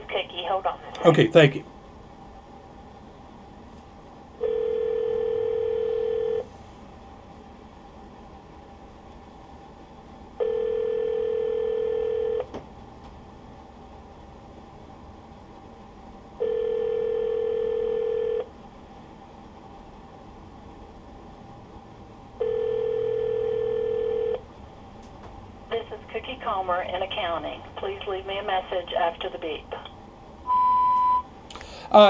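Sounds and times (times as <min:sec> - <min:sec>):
telephone ringback tone: 0:04.4 - 0:06.4, 0:10.4 - 0:12.5, 0:16.4 - 0:18.5, 0:22.4 - 0:24.4, 0:30.5 - 0:31.2.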